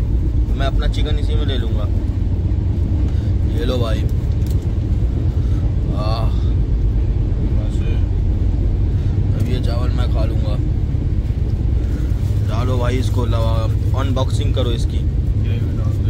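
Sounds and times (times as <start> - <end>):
voices: 0.0 - 2.3, 3.2 - 4.2, 11.8 - 16.0
train running rumble: 0.0 - 16.0.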